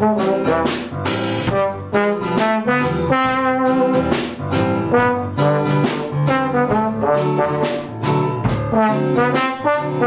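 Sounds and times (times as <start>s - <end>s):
drum kit: 0.0s - 10.0s
electric keyboard: 0.0s - 10.0s
trombone: 0.0s - 10.0s.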